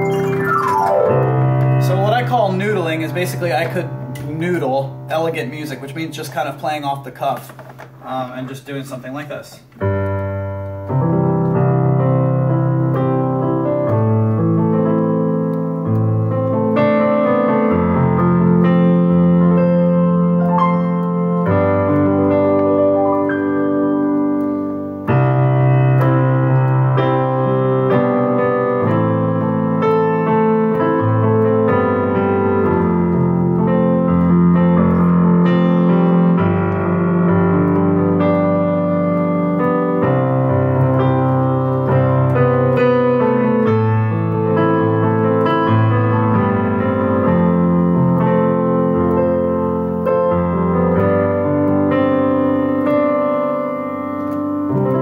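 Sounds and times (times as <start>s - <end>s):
digital piano improvising: 0.0s - 55.0s.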